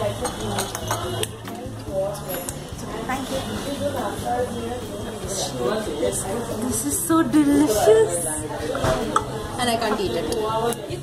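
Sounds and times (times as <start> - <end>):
cutlery and plates clinking: 0.0 - 2.6
background music: 0.0 - 11.0
chatter: 0.0 - 11.0.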